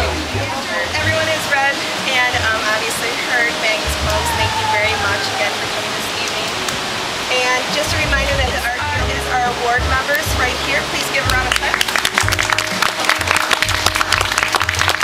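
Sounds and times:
crowd chatter: 0.0s - 12.1s.

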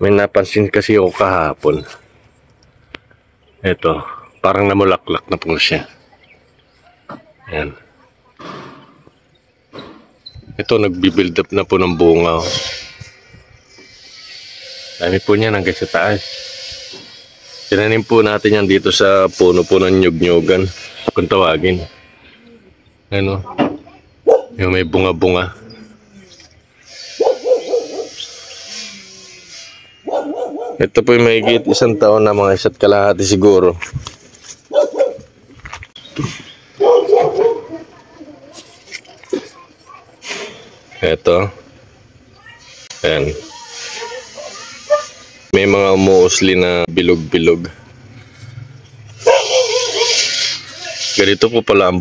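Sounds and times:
dog barking: 24.2s - 24.6s, 27.2s - 28.2s, 30.0s - 30.8s, 34.7s - 35.3s, 36.8s - 37.9s, 44.0s - 45.2s, 49.2s - 50.3s
animal's wavering call: 25.6s - 30.7s.

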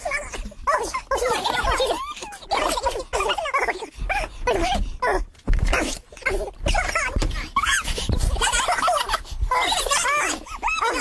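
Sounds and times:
sped-up high-pitched yelping voices: 6.2s - 11.0s.

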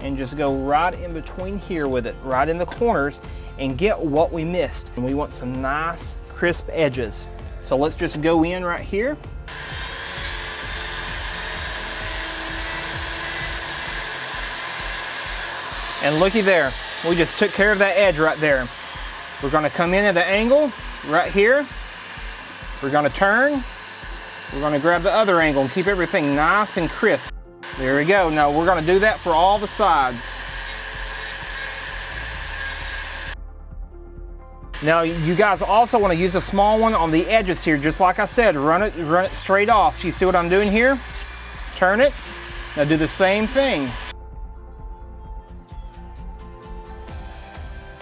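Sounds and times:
rotary tool grinding wood: 9.0s - 33.4s, 34.8s - 44.1s.

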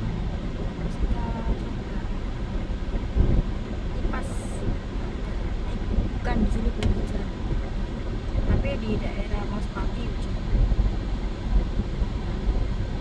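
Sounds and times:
bus driving past: 0.0s - 8.6s
low traffic rumble: 0.0s - 13.0s.

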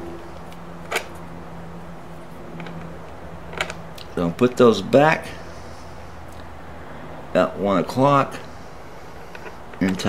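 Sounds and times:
steady low hum: 0.0s - 10.0s
control knobs clicking onto shafts: 9.3s - 10.0s.

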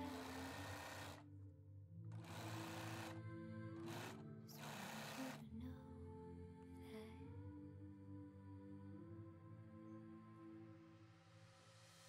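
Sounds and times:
sewing machine stitching fabric: 0.0s - 1.2s, 2.1s - 3.2s, 3.8s - 5.4s.

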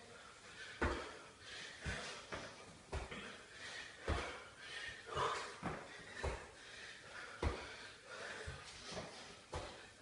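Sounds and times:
man breathing hard: 0.0s - 10.0s.

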